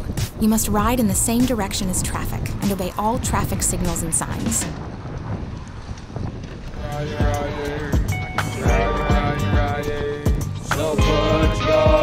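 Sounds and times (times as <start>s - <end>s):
music: 0.0s - 4.7s, 6.8s - 12.0s
road noise: 0.0s - 12.0s
wind rushing over microphone: 0.0s - 12.0s.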